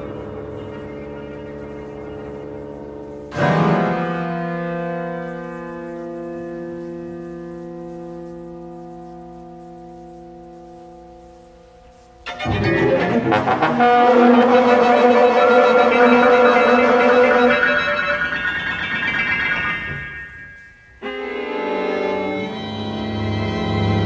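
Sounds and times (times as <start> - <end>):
chamber ensemble playing: 12.3 - 20.2.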